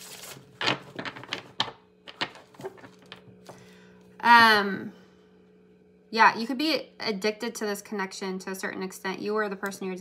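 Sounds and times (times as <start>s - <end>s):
playing cards shuffling: 0.0s - 1.5s.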